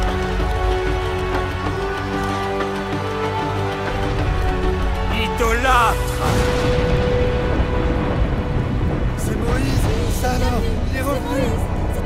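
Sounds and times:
deep thunder-like rumble: 6.0s - 12.0s.

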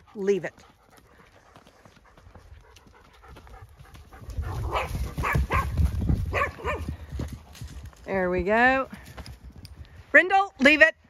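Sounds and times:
dog panting: 0.0s - 7.5s.

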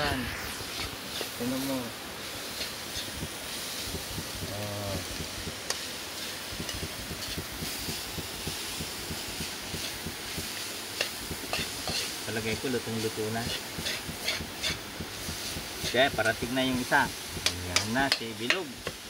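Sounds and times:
food sizzling in a wok: 0.0s - 19.0s
metal spoon scraping a pan: 11.0s - 12.2s, 13.4s - 14.9s.

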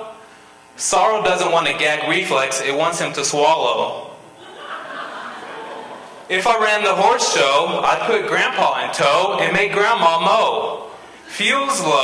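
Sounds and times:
audience chuckling softly: 4.4s - 6.3s.

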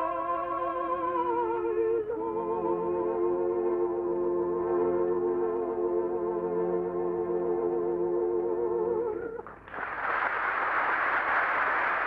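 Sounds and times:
old recording surface hiss: 0.0s - 12.0s.

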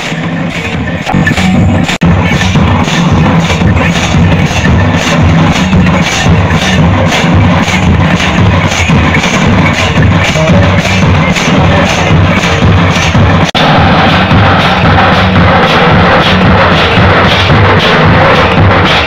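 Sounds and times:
drum-driven dance music: 0.0s - 19.0s
steady low throb: 0.0s - 19.0s.

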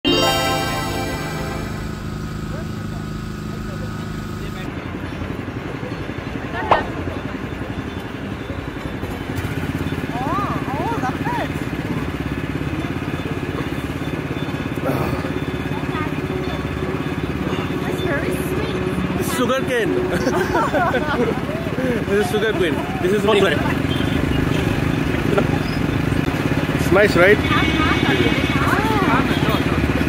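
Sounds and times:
small petrol engine running: 0.3s - 30.0s.

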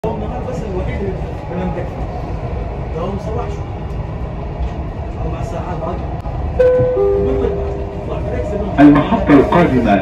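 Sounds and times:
train rumbling inside carriage: 0.0s - 10.0s.

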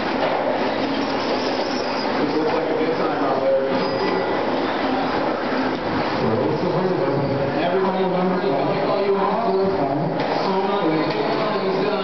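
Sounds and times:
echoing race hall din: 0.0s - 12.0s.

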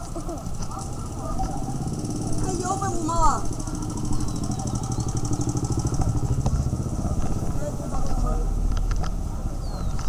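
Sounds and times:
indistinct street chatter: 0.0s - 10.0s
small motorcycle engine running: 0.6s - 9.6s.

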